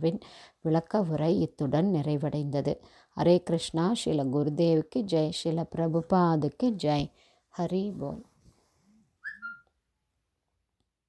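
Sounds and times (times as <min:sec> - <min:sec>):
high whistle-like chirps: 0:09.2 - 0:09.8.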